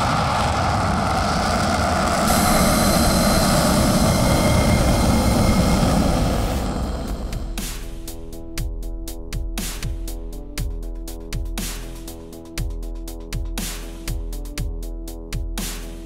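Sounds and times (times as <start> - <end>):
loud jet roar: 0.0 - 8.6.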